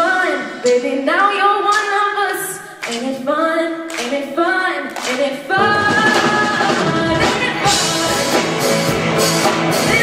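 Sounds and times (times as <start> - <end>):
woman singing: 0.0 - 8.7, 9.7 - 10.0
hand claps: 2.8 - 3.2, 3.9 - 4.2, 4.8 - 5.3
rock band playing loudly: 5.6 - 10.0.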